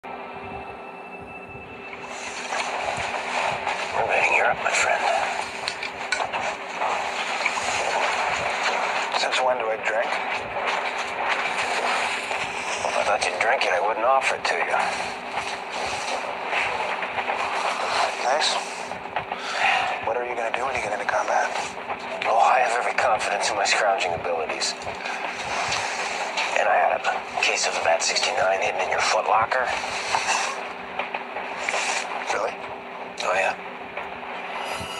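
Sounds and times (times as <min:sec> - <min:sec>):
railway carriage running noise: 0:00.0 - 0:34.9
train rumble and hum: 0:00.0 - 0:34.9.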